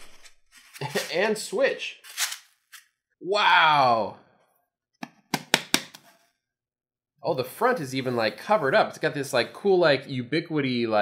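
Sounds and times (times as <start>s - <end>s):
sharp knocks of handled device: 5.0s - 6.0s.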